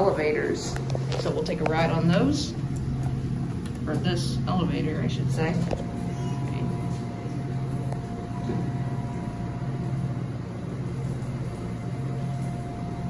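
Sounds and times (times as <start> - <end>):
low mechanical hum: 0.0 - 13.0
thin steady whine: 0.0 - 13.0.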